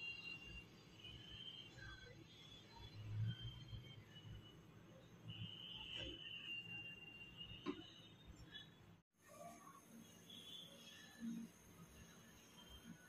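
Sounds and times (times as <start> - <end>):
faint high steady tone: 0.0 - 13.0.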